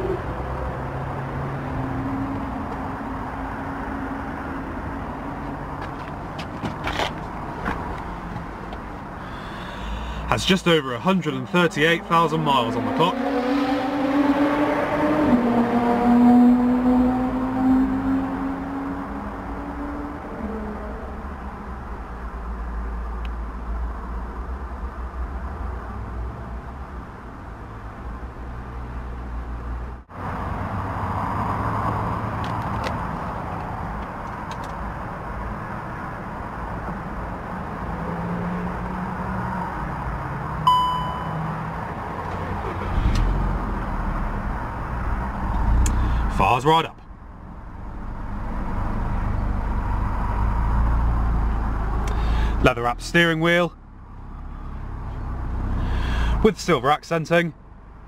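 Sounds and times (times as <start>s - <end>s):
short dashboard chime: 40.7s - 41.4s.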